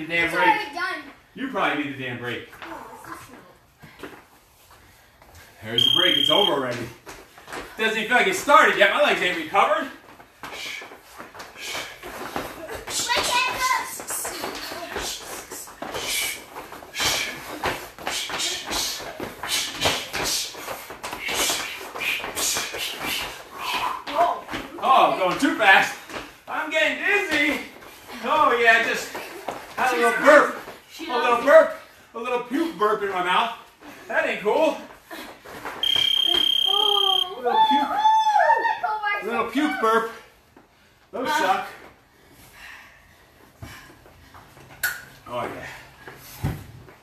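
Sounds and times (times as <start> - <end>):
person talking: 5.8 - 6.6
hands and feet slapping gym floor: 6.0 - 31.5.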